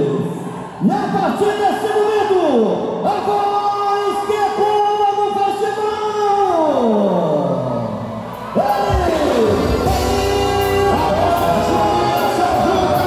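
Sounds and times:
dance music over sound system: 8.4s - 13.0s
heavy bass beat: 8.9s - 13.0s.

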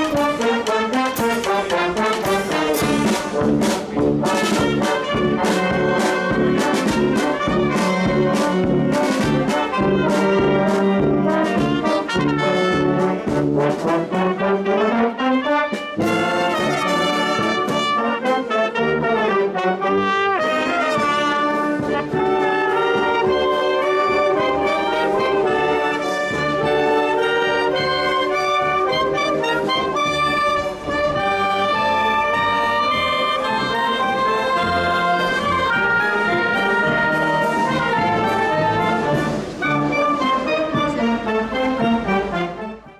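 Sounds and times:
bass drum and cymbal beats: 0.0s - 14.0s
marching band playing: 0.0s - 42.9s.

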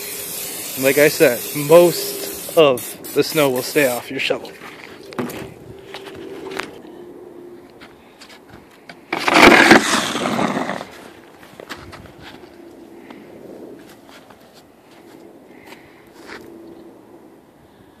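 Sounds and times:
footsteps in snow: 4.3s - 6.8s
snow shovel scraping wet snow: 9.2s - 11.0s.

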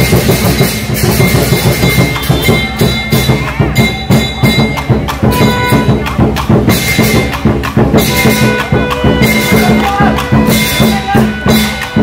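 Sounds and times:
cymbals clashing: 0.0s - 12.0s
large drum beating fast: 0.0s - 12.0s.

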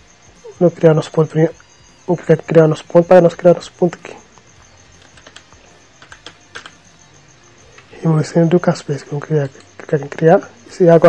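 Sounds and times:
computer keyboard typing: 4.9s - 7.0s.

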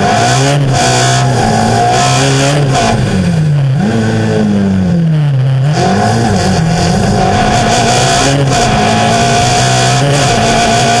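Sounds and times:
car engine revving: 0.0s - 11.0s
wind and road noise: 0.0s - 11.0s
steady high whine: 1.2s - 11.0s.

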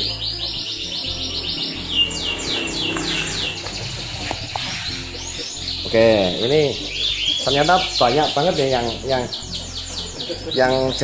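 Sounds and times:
canary singing: 0.0s - 11.0s.

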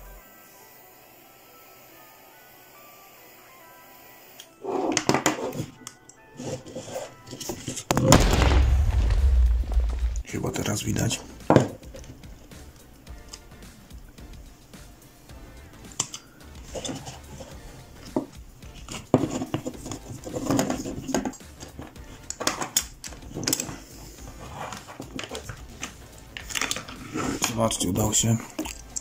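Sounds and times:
plastic and metal clicks and scrapes: 16.0s - 23.8s, 24.4s - 27.6s.

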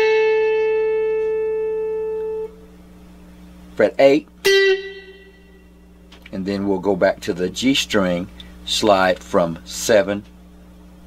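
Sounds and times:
electric guitar note ringing: 0.0s - 2.8s, 4.4s - 6.1s.

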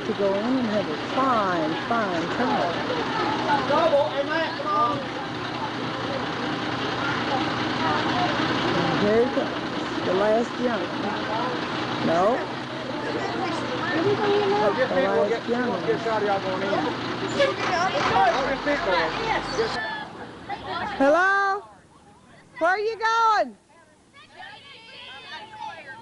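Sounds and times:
bus engine idling: 0.0s - 23.2s, 24.0s - 26.0s
children chattering and calling out: 0.0s - 26.0s.

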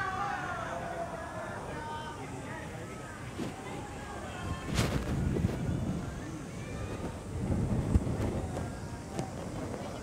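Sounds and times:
wind rumbling on microphone: 3.3s - 10.0s.

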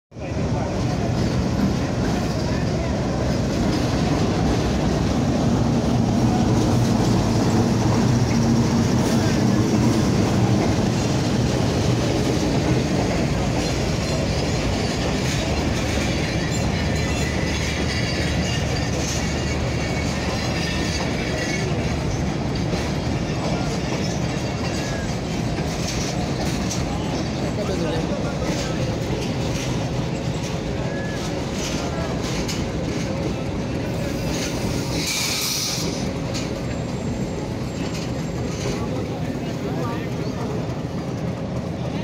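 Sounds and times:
diesel locomotive passing: 0.2s - 42.0s
train wheels rolling on rails: 0.2s - 42.0s
high wheel squeals: 13.2s - 22.4s, 30.1s - 32.2s, 33.8s - 38.9s.

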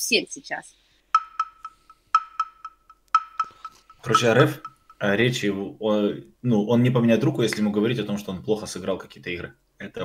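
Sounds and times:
electronic tick with echoes: 1.1s - 5.0s.

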